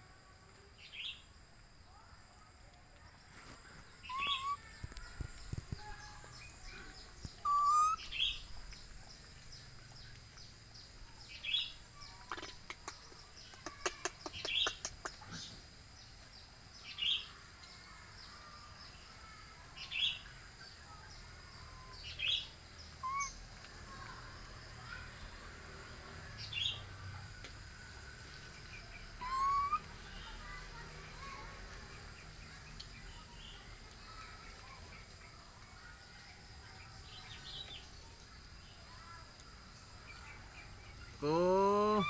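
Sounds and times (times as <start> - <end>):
bird chirping: 3.8 - 17.3, 19.8 - 23.5, 28.4 - 30.5, 39.8 - 42.0.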